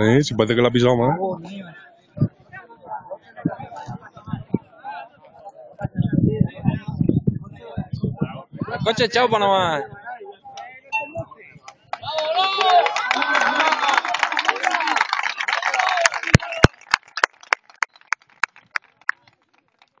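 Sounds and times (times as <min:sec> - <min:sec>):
overlapping voices: 0:10.6 - 0:20.0.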